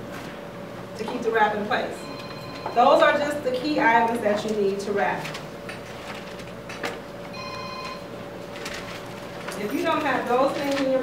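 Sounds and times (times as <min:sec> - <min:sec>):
electronic ringing tone: 0:02.0 - 0:02.9, 0:07.3 - 0:08.1.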